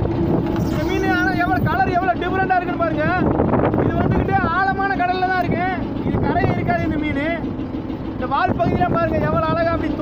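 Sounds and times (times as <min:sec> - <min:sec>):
boat engine rumble: 0:00.0 - 0:10.0
wind at sea: 0:00.0 - 0:10.0.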